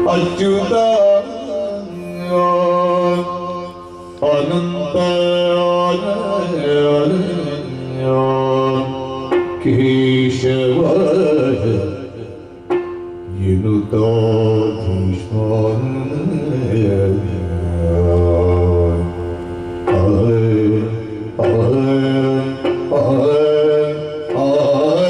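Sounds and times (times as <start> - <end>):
man singing long held notes: 0.0 - 25.0.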